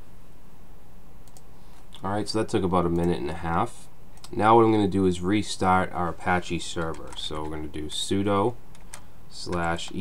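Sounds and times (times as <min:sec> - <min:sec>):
low room hum: 0:00.0 - 0:10.0
faint clicks: 0:01.2 - 0:02.1.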